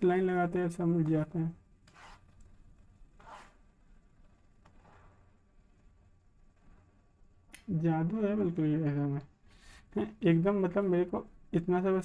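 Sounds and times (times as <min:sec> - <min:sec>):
stylus rubbing on drawing tablet: 0:01.8 - 0:02.4, 0:03.1 - 0:03.8, 0:04.6 - 0:05.5, 0:06.5 - 0:07.1.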